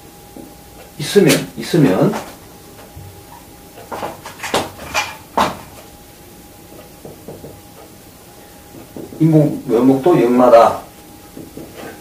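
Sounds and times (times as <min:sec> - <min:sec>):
knocks on whiteboard: 0:07.0 - 0:07.6
marker tapping on whiteboard: 0:07.0 - 0:07.9, 0:08.8 - 0:09.3, 0:11.4 - 0:11.9.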